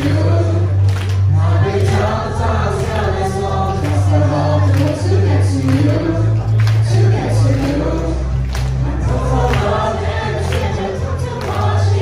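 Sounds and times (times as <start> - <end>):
backing track with bass line: 0.0 - 12.0
group singing into microphones: 0.0 - 12.0.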